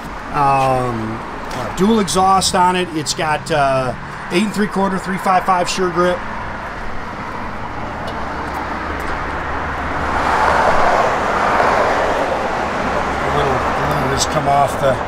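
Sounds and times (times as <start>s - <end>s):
low traffic rumble: 0.0s - 15.0s
passing vehicle: 0.0s - 15.0s.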